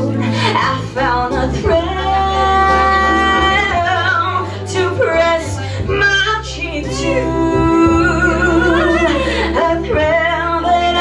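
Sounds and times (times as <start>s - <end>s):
instrumental accompaniment: 0.0s - 11.0s
woman singing a slow ballad: 0.0s - 11.0s.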